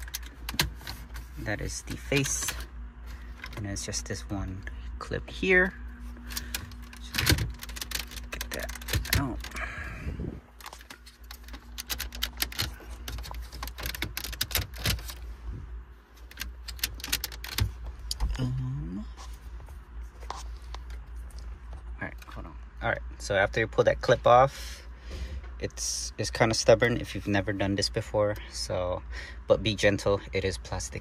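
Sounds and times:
plastic trim clicking and rattling: 6.3 - 9.6, 10.6 - 15.2, 16.3 - 17.8.

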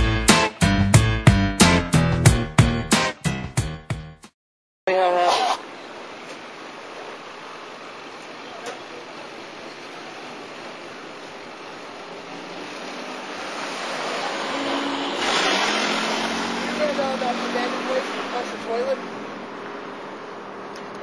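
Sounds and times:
vehicle passing: 10.2 - 21.0.

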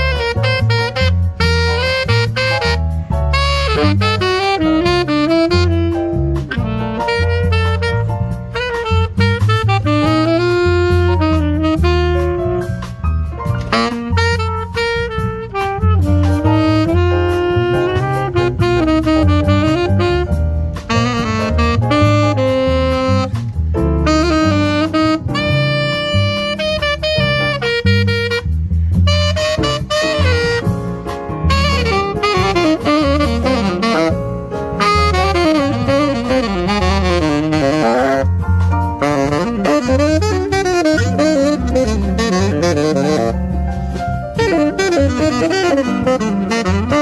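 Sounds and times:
saxophone solo: 0.0 - 47.0
upright bass plucking: 0.0 - 47.0.

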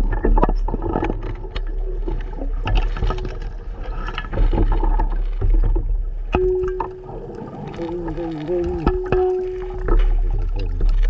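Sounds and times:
bubbles crackling and clicking: 0.0 - 11.0
underwater rumble of moving water: 0.0 - 11.0.

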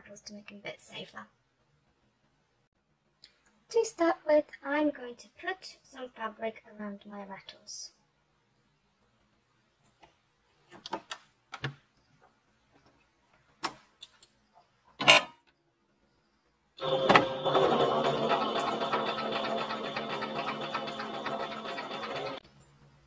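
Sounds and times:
sewing machine stitching: 16.8 - 22.4.

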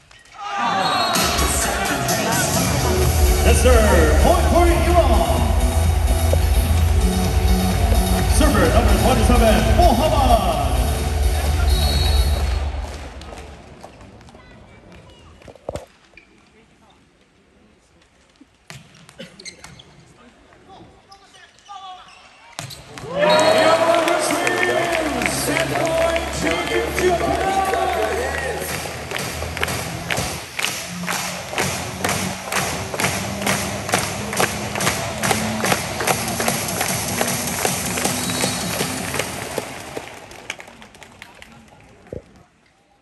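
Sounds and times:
crowd of spectators: 0.0 - 17.0, 22.7 - 43.0
loud bass-heavy music over pa: 1.2 - 12.8.

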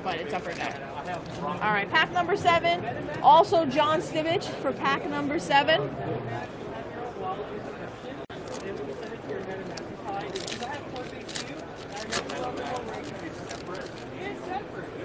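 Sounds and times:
crowd chatter: 0.0 - 15.0
foil wrapper crinkling and tearing: 0.3 - 1.4, 8.3 - 14.3.

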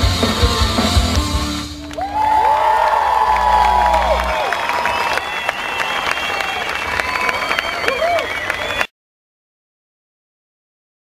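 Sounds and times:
rock band and orchestra chord: 0.0 - 2.1
audience applause and cheering: 0.0 - 8.9.

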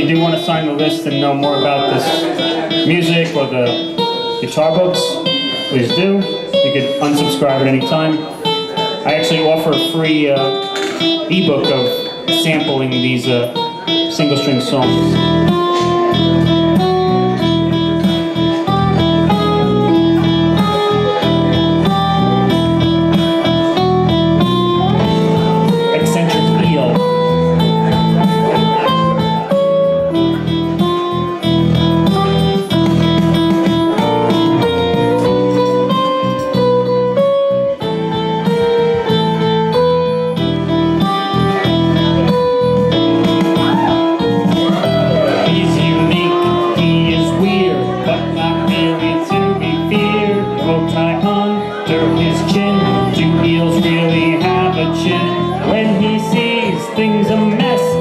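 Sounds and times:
electric guitar melody: 0.0 - 58.0
recorded backing track: 0.0 - 58.0.

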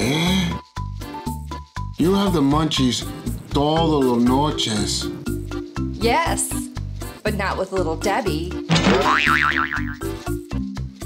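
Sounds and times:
comic music with bouncing bass: 8.6 - 10.6
cartoon wobble sound effect: 8.7 - 10.0.

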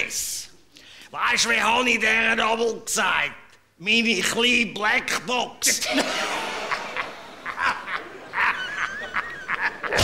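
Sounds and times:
men laughing hard: 5.8 - 10.0.

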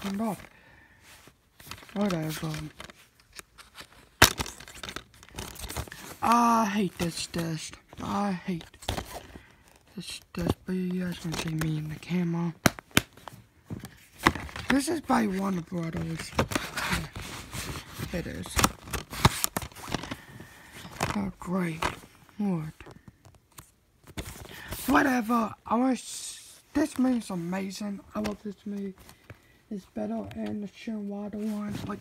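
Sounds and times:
plastic rustling: 0.0 - 25.3
plastic case snapping: 4.1 - 5.9.

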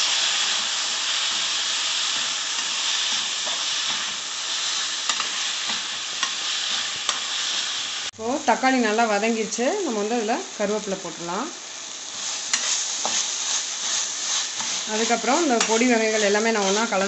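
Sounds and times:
vegetables sizzling in a pot: 0.0 - 17.0
metal spatula scraping pan: 12.1 - 17.0.

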